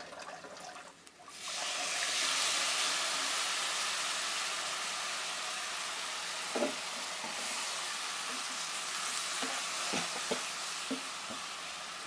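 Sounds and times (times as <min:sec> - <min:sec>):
burst of steam in hot oil: 0:01.3 - 0:12.0
spice paste sizzling in a wok: 0:01.3 - 0:12.0.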